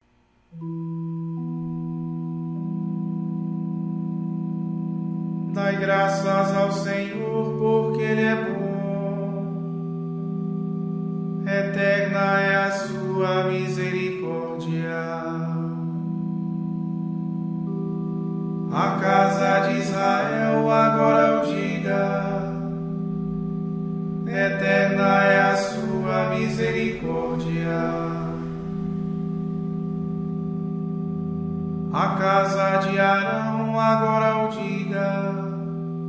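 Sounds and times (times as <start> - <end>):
sustained accompaniment chords: 0.5 - 36.0
person chanting: 5.4 - 10.0, 11.4 - 17.8, 18.7 - 23.6, 24.2 - 30.0, 31.9 - 36.0.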